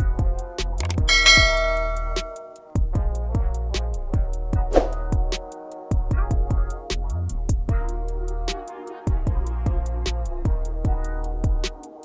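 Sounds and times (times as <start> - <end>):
bright bell chime: 1.1 - 2.6.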